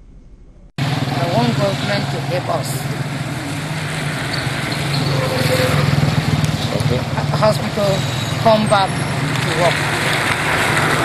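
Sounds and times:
outdoor noise: 0.0 - 11.0
small engine running: 0.8 - 11.0.

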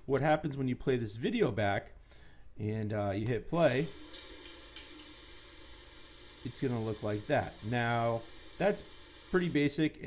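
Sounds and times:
beer pouring into a glass: 3.8 - 9.7.

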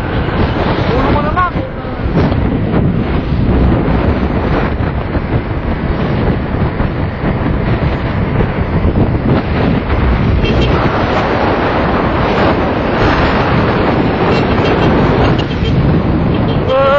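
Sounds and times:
motorbike engine and road noise: 0.0 - 16.9
wind buffeting microphone: 0.0 - 16.9.

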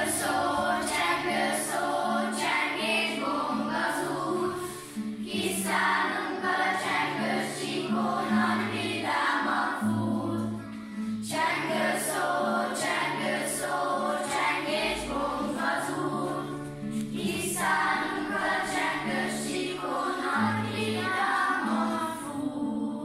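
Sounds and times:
children singing: 0.0 - 23.0.

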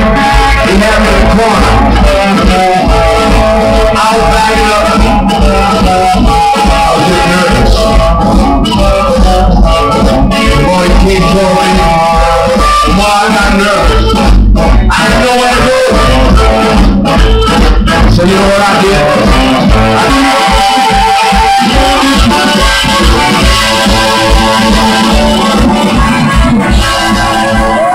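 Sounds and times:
amplified harmonica: 0.0 - 27.9
blues band playing: 0.0 - 27.9
electric guitars: 0.0 - 27.9
rhythm section: 0.0 - 27.9.

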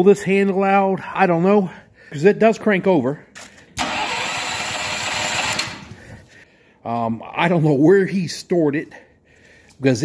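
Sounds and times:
generator engine cranking: 3.8 - 6.2.

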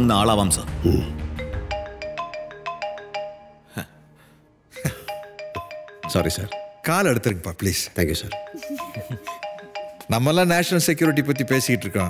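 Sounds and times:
phone ringtone melody: 1.4 - 3.7, 4.8 - 7.4, 8.0 - 12.0.

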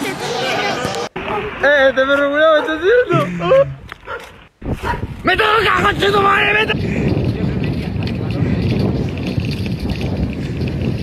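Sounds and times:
wind rushing over microphone: 3.2 - 11.0.

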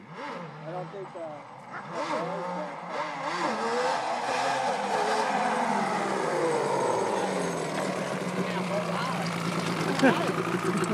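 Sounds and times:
quad bike engine running: 0.0 - 10.9.

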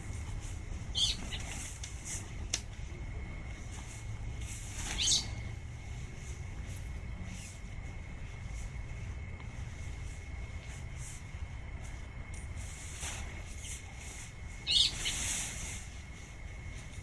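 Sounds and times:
low wind rumble: 0.0 - 17.0
tent fabric rustling and swishing: 0.0 - 17.0.

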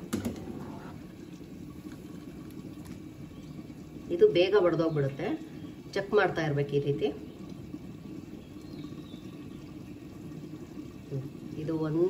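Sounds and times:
water bubbling in pot: 0.0 - 12.0.

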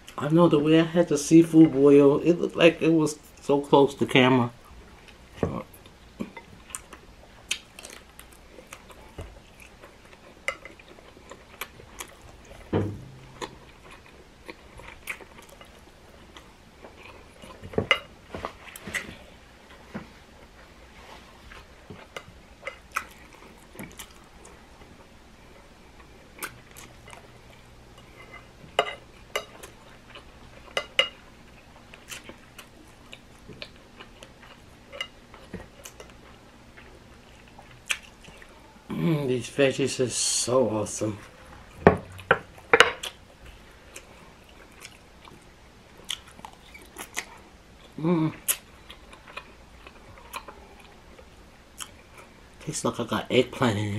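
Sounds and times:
chewing: 4.9 - 20.7, 21.5 - 38.6, 41.5 - 52.4.

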